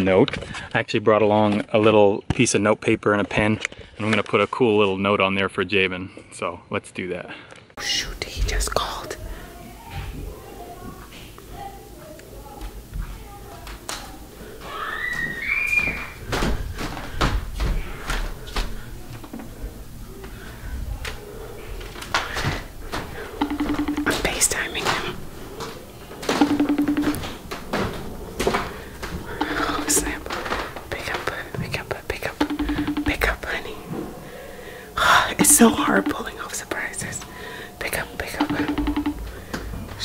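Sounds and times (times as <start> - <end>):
woman whispering: 7.8 - 9.2, 24.1 - 25.2, 29.4 - 32.5, 33.1 - 33.8, 35.0 - 38.5
phone vibrating buzz: 23.4 - 25.0, 26.4 - 27.4, 32.3 - 33.5, 38.4 - 39.3.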